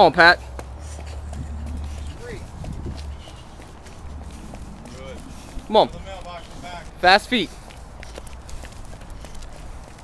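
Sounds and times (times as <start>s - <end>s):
quick irregular footsteps: 0.0s - 10.0s
low rumble: 0.8s - 6.9s.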